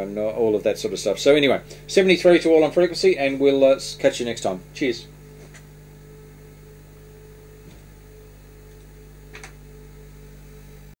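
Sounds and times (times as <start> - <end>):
electrical mains hum: 0.0 - 11.0
faint steady whine: 0.0 - 11.0.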